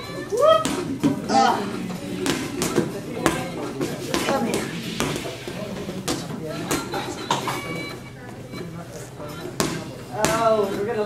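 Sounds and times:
indistinct group talking: 0:00.0 - 0:11.0.

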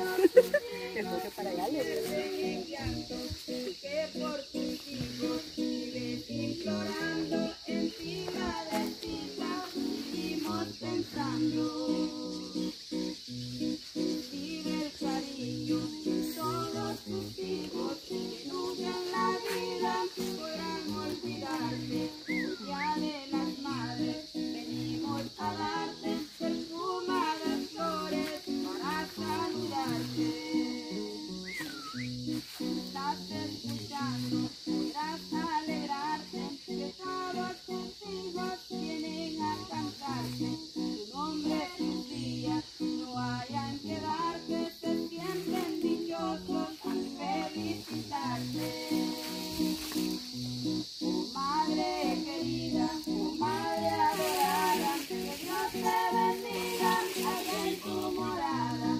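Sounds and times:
person singing: 0:00.0 - 0:13.1, 0:14.0 - 0:31.5, 0:32.7 - 0:50.2, 0:51.3 - 0:58.9
acoustic guitar strumming: 0:00.0 - 0:58.9.

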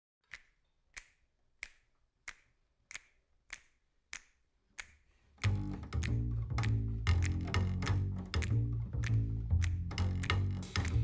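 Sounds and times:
finger snaps: 0:00.2 - 0:11.0
music with deep bass line: 0:05.4 - 0:11.0.

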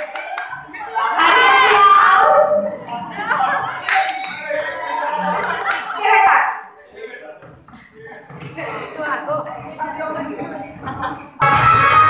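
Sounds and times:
hand claps: 0:00.0 - 0:00.6
people talking and calling out: 0:00.0 - 0:12.0.

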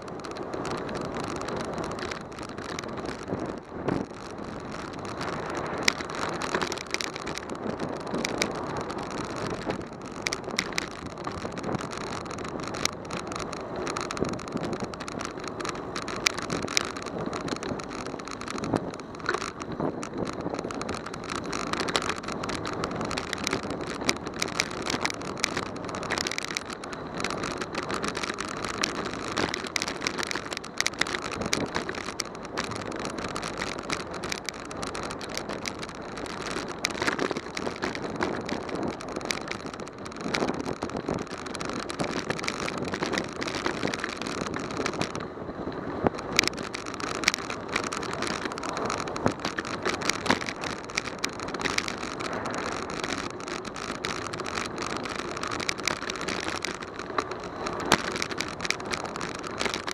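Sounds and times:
bicycle clicks and rattles: 0:00.0 - 0:59.9
bicycle tyre noise: 0:00.0 - 0:59.9.

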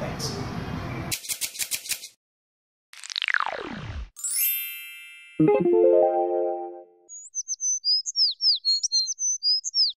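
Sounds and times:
bird chirping: 0:07.1 - 0:09.9.

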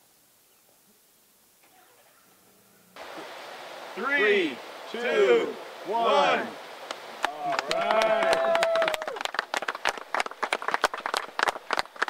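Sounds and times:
people clapping: 0:06.8 - 0:12.0.

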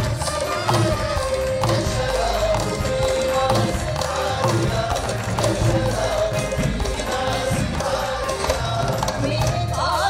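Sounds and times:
steady percussion beats: 0:00.0 - 0:10.0
backing singers singing together: 0:01.5 - 0:10.0.

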